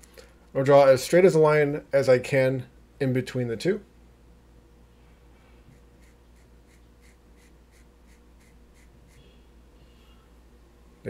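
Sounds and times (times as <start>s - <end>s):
marker drawing on tape: 5.7s - 9.3s.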